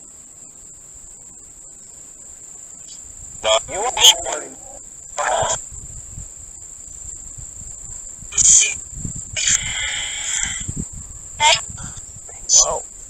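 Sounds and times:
crickets chirring: 0.0 - 13.0
radio static bursts: 2.8 - 5.8, 8.2 - 10.8, 11.4 - 12.9
clipped radio sound fragments: 2.9 - 5.6, 8.3 - 8.8.

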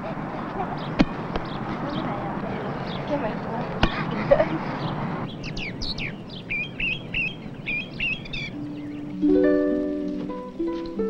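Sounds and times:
small songbird chirping: 0.0 - 11.0.

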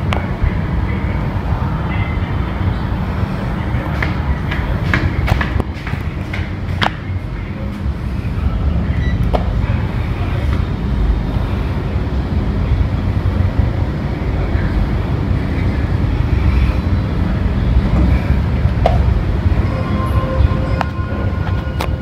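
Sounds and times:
steady low rumble: 0.0 - 22.0
lift doors sliding open: 15.4 - 22.0.

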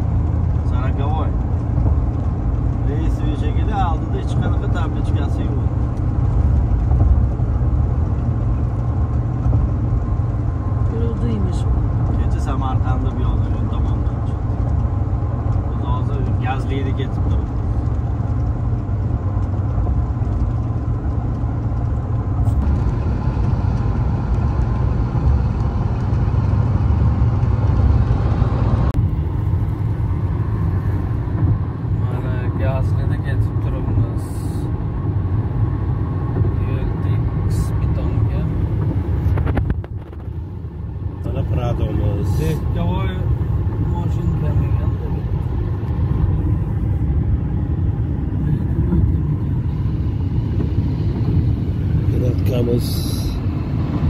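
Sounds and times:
car road rumble inside cabin: 0.0 - 54.0.

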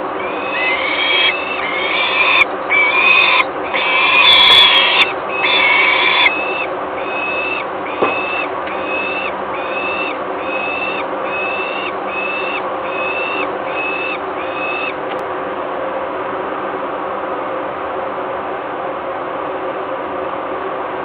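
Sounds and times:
falcons wailing begging calls: 0.0 - 15.0.

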